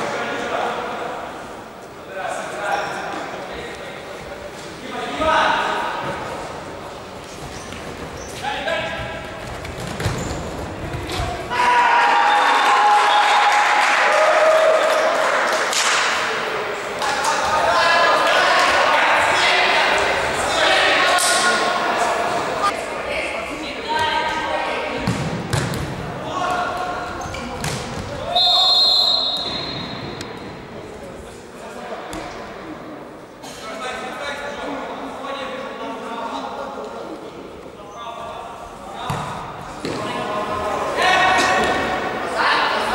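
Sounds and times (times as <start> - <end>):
voices shouting in a hall: 11.0 - 25.0, 26.1 - 30.3, 37.8 - 42.9
referee's whistle blast: 28.3 - 30.0.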